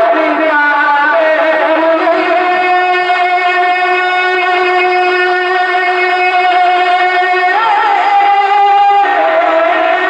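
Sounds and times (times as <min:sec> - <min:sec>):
man singing into microphone: 0:00.0 - 0:10.0.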